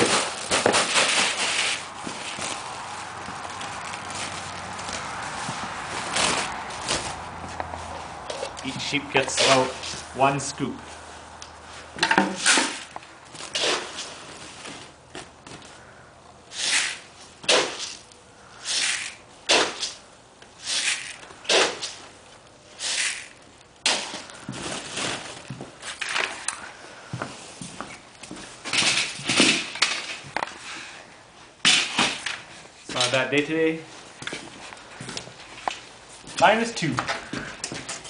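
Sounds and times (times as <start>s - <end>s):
sack rustling: 0.0s - 8.2s
grain feed pouring into buckets: 22.8s - 23.4s.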